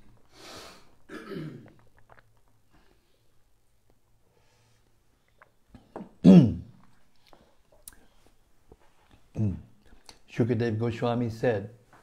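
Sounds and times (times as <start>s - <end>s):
man coughing: 1.1s - 1.7s, 6.2s - 6.7s.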